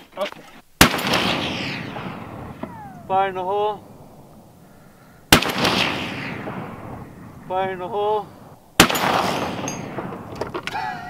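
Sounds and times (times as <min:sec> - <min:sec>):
rolling rifle shot report: 0:00.8 - 0:04.5, 0:05.3 - 0:10.6
short falling whine: 0:02.3 - 0:03.9.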